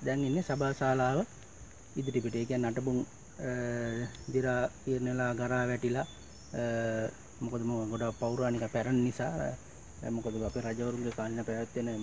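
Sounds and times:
high-pitched insect drone: 0:00.0 - 0:12.0
man talking: 0:02.0 - 0:12.0.

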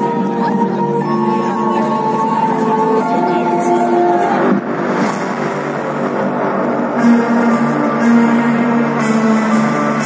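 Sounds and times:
amplified live concert music: 0:00.0 - 0:10.0.

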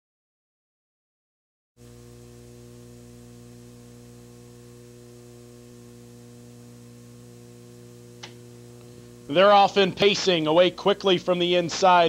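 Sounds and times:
electrical mains hum: 0:01.8 - 0:12.0.

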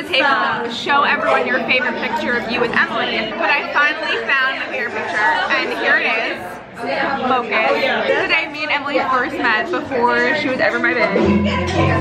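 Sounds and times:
background voices chattering: 0:00.0 - 0:12.0
people talking: 0:00.0 - 0:12.0.

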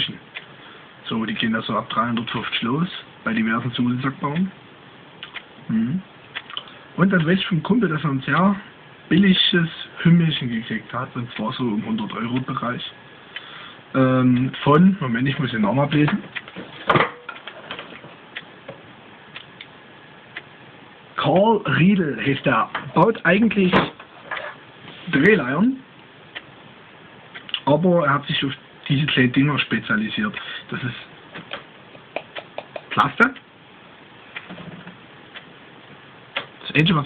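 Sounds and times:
room noise hiss: 0:00.0 - 0:37.0
faint clicks: 0:05.2 - 0:05.5.

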